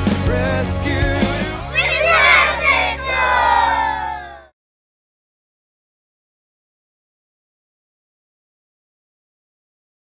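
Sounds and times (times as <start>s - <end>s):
children shouting and cheering: 1.6s - 4.5s.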